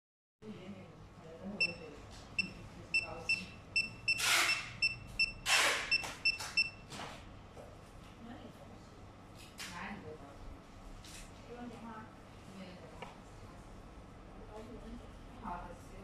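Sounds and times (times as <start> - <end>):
short high beeps: 1.6 - 1.8, 2.4 - 6.8.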